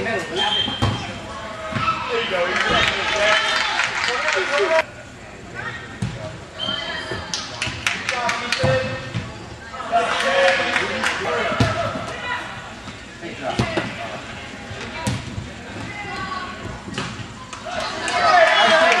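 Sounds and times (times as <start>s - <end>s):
indistinct shouting and chatter: 0.0s - 19.0s.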